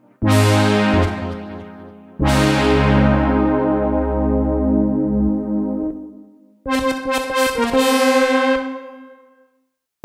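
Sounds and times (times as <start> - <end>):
synthesizer brass chord: 0.1 - 9.5.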